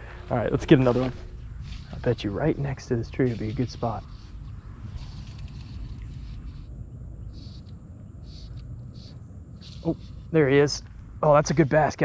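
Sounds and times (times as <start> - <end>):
wind rumble: 0.0 - 12.0
camera handling noise: 4.9 - 6.7.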